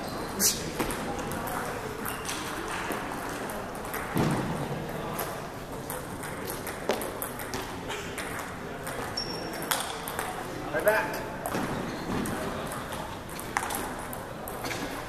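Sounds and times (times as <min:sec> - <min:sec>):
table tennis ball clicking: 0:05.2 - 0:10.4.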